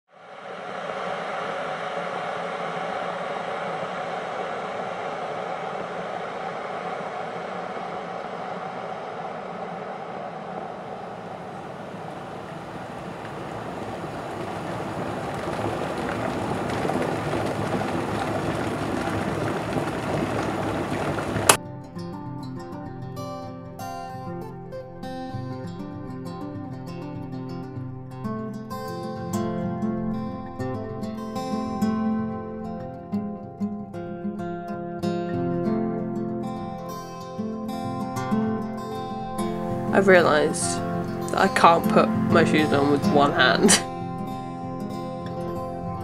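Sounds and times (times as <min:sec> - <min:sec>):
steady rushing ambient noise: 0:00.1 - 0:21.6, 0:38.6 - 0:46.0.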